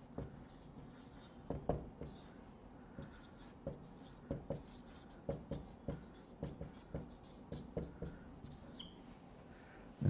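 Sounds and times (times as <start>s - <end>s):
marker writing on whiteboard: 0.0s - 9.0s.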